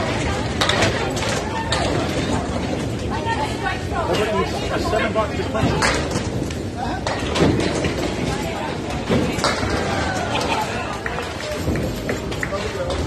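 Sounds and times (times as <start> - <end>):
people talking: 0.0 - 6.1
bowling pins clattering: 0.0 - 13.0
bowling ball rolling on wooden lane: 5.5 - 13.0.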